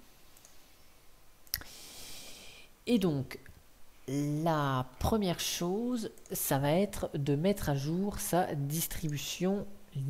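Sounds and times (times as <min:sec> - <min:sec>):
soft hiss: 0:00.0 - 0:10.0
computer mouse click: 0:00.3 - 0:00.6.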